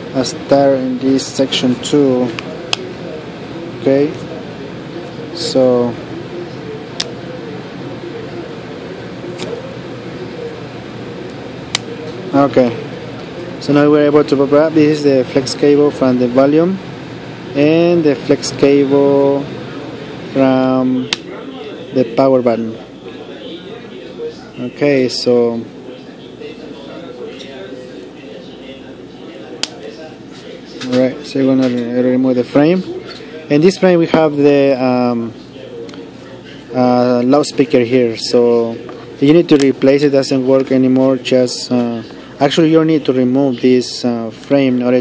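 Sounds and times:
faint low background hum: 0.0 - 45.0
room noise: 0.0 - 45.0.

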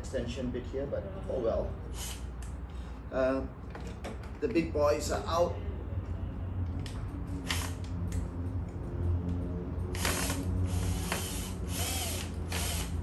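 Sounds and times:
drill-driver ratcheting: 7.5 - 7.9, 10.0 - 13.0.

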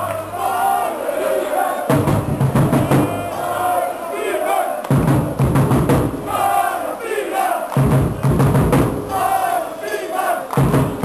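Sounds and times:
crowd chanting in unison: 0.0 - 11.0
regular drum beats: 1.9 - 3.6, 4.9 - 6.5, 7.7 - 9.4, 10.5 - 11.0.

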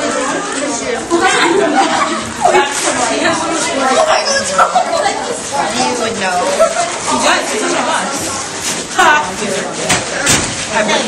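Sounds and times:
teenagers chattering: 0.0 - 11.0.

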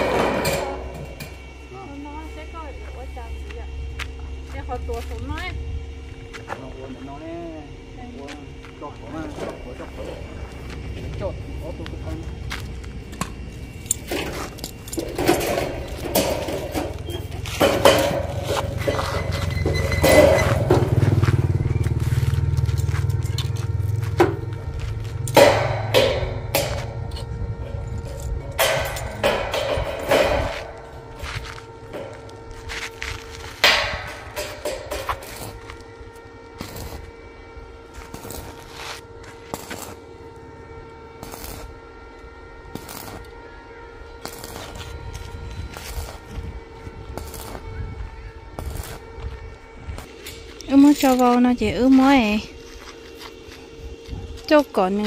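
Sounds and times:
low rumble: 0.0 - 38.6
steel tubing knocking and clanking: 25.3 - 27.0, 28.4 - 30.8, 33.6 - 35.2.

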